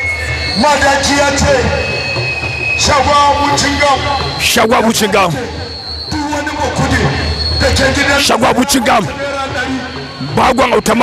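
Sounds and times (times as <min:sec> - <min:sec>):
steady high tone: 0:00.0 - 0:11.0
man calling over loudspeaker: 0:00.5 - 0:02.0, 0:02.8 - 0:11.0.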